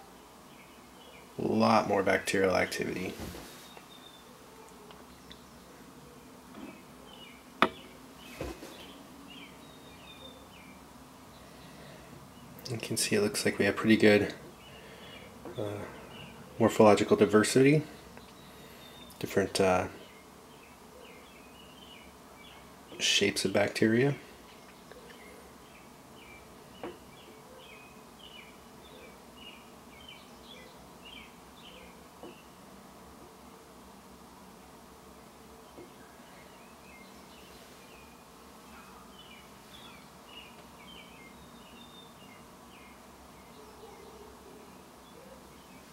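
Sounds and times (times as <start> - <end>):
background hiss: 0.0 - 45.9
faint high-pitched buzz: 0.0 - 45.9
faint room hum: 0.0 - 45.9.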